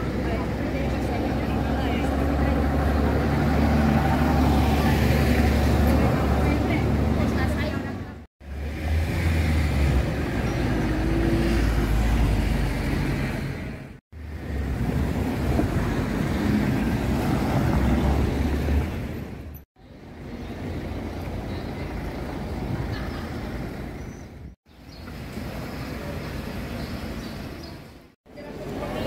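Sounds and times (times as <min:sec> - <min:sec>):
people's voices: 0:00.0 - 0:08.2, 0:28.3 - 0:29.0
traffic rumble: 0:00.0 - 0:29.0.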